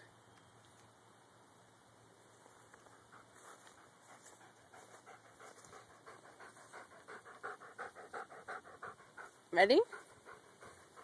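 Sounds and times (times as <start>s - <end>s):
dog panting: 2.9s - 11.0s.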